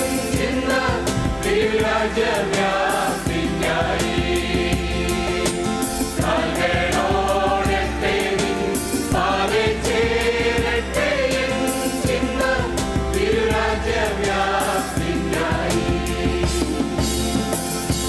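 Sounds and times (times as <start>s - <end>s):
choir singing a hymn: 0.0s - 18.0s
instrumental accompaniment with beat: 0.0s - 18.0s.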